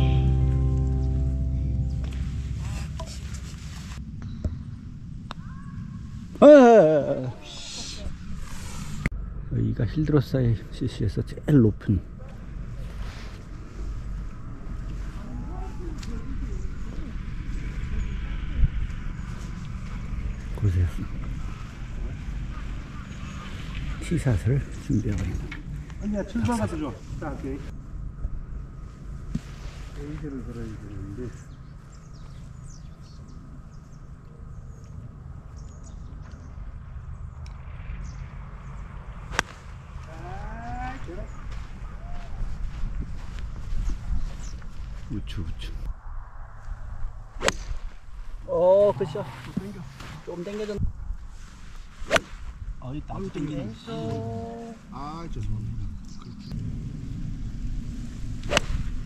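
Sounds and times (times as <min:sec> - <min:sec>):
low rumble: 0:00.0 - 0:06.4, 0:07.3 - 0:26.0, 0:27.0 - 0:53.1, 0:53.7 - 0:59.0
golf club striking ball: 0:39.3 - 0:39.6, 0:47.4 - 0:47.7, 0:58.4 - 0:58.8.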